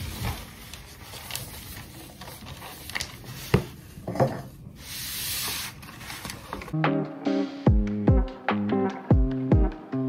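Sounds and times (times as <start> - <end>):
paper crinkles: 0.0 - 3.6
paper rustling: 0.0 - 6.8.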